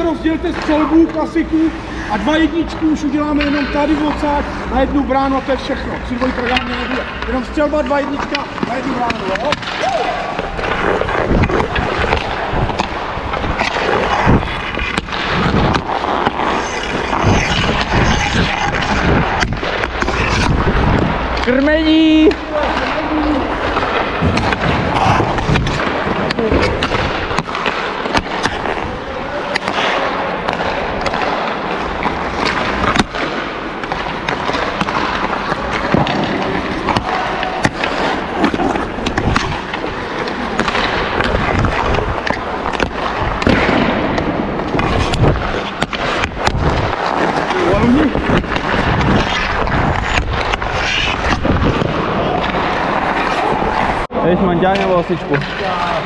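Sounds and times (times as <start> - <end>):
players' voices: 0.0 - 56.0
skate blades scraping ice: 0.0 - 56.0
sticks hitting pucks: 0.0 - 56.0
pucks striking boards: 3.2 - 4.2, 6.1 - 56.0.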